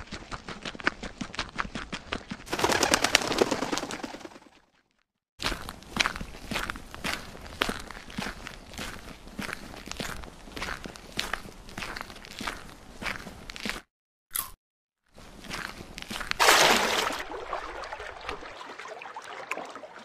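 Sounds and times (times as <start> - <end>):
crunchy footsteps: 5.4 - 13.9, 15.1 - 17.0.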